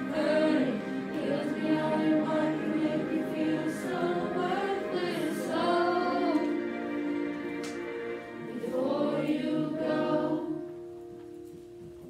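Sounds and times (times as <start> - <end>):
choir singing a pop ballad: 0.0 - 10.9.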